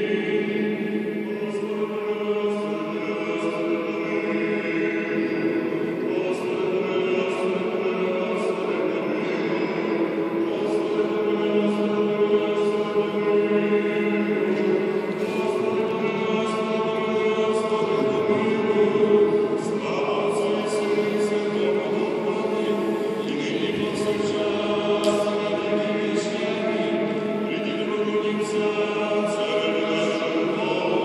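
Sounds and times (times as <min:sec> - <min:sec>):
voices singing chant in harmony: 0:00.0 - 0:31.0.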